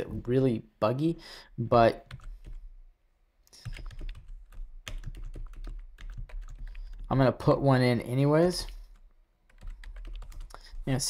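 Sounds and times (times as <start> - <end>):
typing on computer keyboard: 3.6 - 7.1, 8.9 - 10.8.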